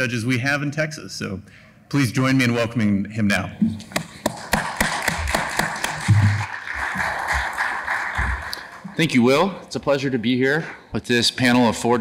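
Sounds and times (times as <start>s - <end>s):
audience applauding: 4.0s - 9.5s.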